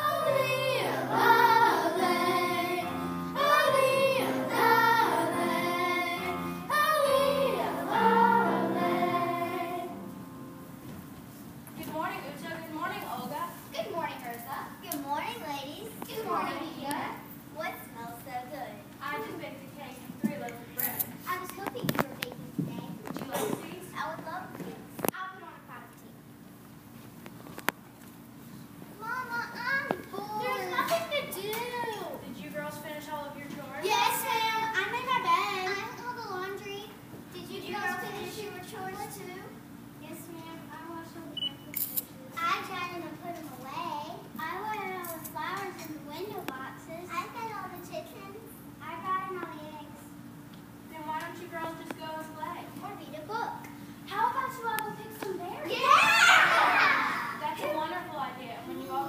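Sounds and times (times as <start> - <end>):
children's voices clamouring: 0.0 - 9.9, 55.6 - 57.6
children speaking: 0.0 - 10.1, 11.8 - 26.1, 29.0 - 50.1, 50.9 - 59.0.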